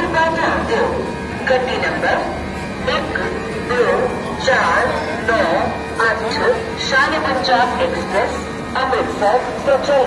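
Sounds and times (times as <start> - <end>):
indistinct voices talking: 0.0 - 10.0.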